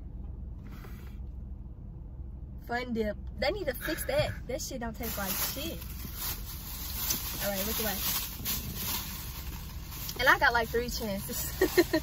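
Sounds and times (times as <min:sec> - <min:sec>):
low hum inside car: 0:00.0 - 0:12.0
plastic bag rustling: 0:05.0 - 0:12.0.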